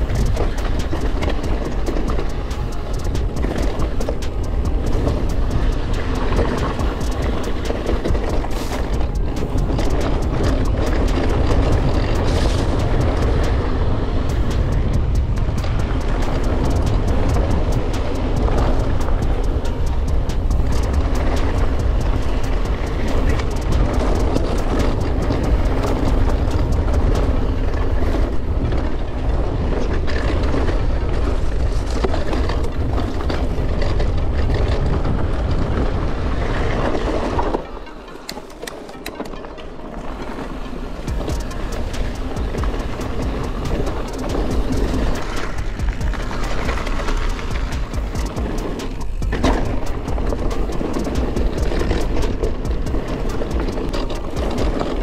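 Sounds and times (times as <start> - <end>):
wind rumble on microphone: 0.0 - 37.7, 41.0 - 55.0
bike tyres clattering over stones: 0.0 - 55.0.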